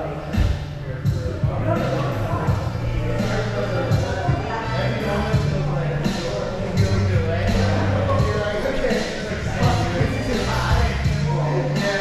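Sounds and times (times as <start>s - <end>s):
background music: 0.0s - 12.0s
voices echoing: 0.0s - 12.0s.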